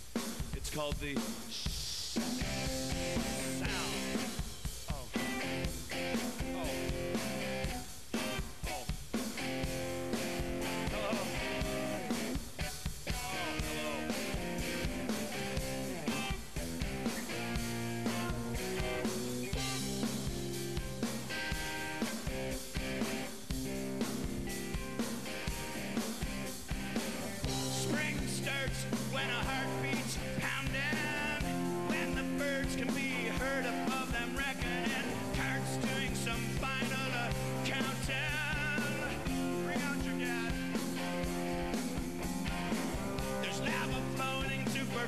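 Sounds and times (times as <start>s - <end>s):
rock band playing live: 0.0s - 45.0s.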